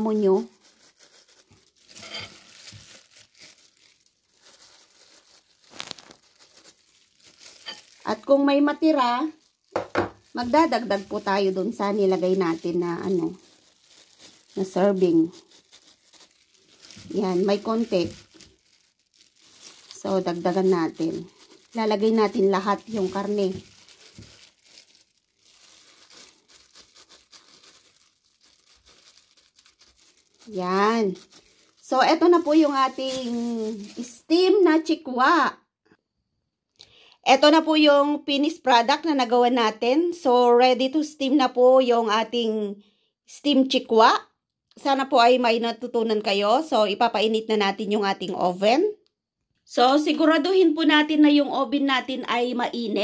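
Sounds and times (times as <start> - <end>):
plastic glove crinkling: 0.0 - 34.9.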